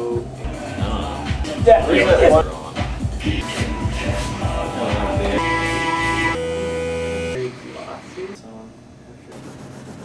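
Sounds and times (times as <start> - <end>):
electric guitar chords ringing: 4.6 - 7.4.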